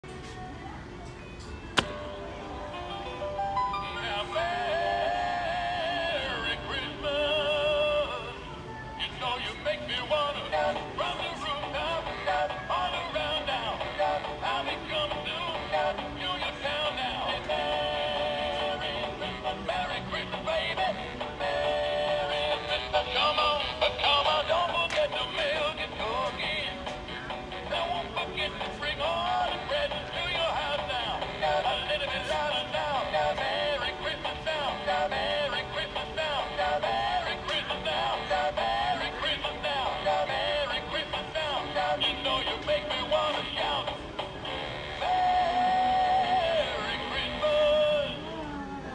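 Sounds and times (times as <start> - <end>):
man singing through toy speaker: 2.6 - 48.9.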